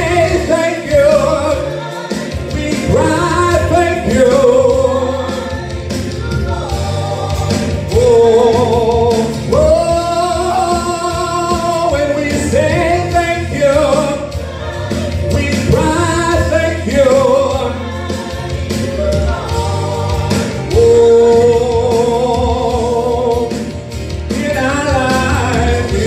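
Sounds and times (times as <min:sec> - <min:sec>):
instrumental accompaniment: 0:00.0 - 0:26.0
man singing gospel: 0:00.0 - 0:26.0.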